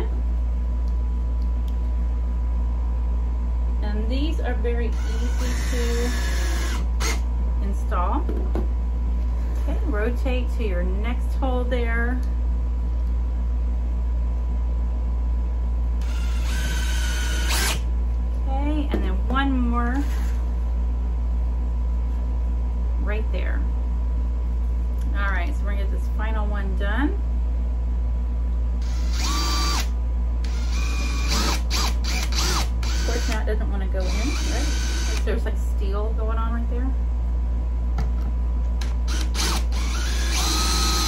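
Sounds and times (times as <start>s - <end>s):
steady low hum: 0.0s - 41.0s
cordless drill whining: 4.9s - 7.2s, 16.0s - 17.8s, 28.8s - 33.4s, 34.1s - 35.3s, 38.8s - 41.0s.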